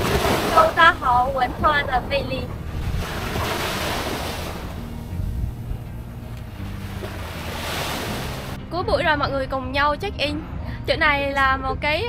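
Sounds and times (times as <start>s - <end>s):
small waves breaking on sand: 0.0s - 5.1s, 6.6s - 8.6s
wind buffeting microphone: 0.0s - 12.0s.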